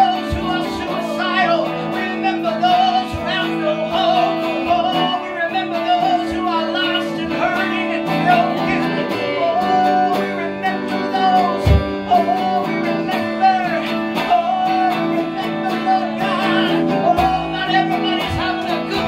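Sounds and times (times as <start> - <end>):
electric guitar: 0.0 - 19.0
man and woman singing: 0.0 - 19.0.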